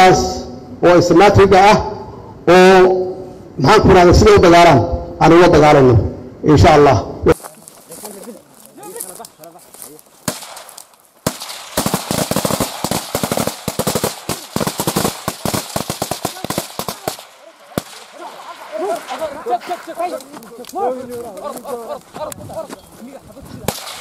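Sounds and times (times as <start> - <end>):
automatic rifle gunshots: 10.2 - 18.7, 23.7 - 24.0.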